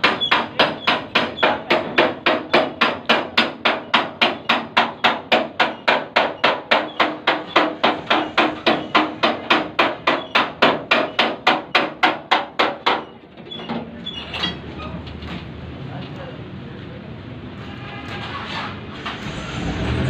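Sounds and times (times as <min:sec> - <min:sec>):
hammer beating sheet metal: 0:00.0 - 0:13.2.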